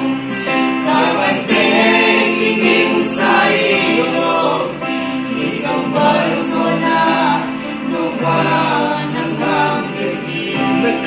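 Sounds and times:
acoustic guitar: 0:00.0 - 0:11.0
electronic keyboard: 0:00.0 - 0:11.0
group singing a praise song: 0:00.0 - 0:11.0.

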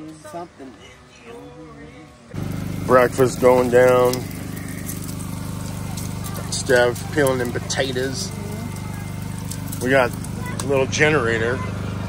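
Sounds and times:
portable generator humming: 0:02.3 - 0:12.0.

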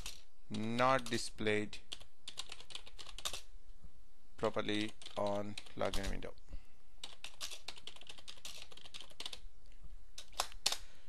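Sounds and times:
typing on computer keyboard: 0:01.9 - 0:03.4, 0:04.7 - 0:06.2, 0:07.0 - 0:09.4, 0:10.2 - 0:10.8.

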